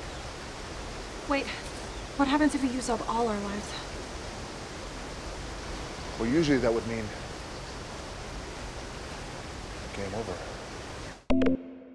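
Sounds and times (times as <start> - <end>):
jungle ambience hiss: 0.0 - 11.2.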